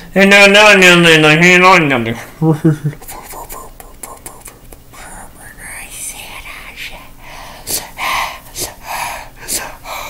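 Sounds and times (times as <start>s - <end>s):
man whispering: 3.0s - 7.2s.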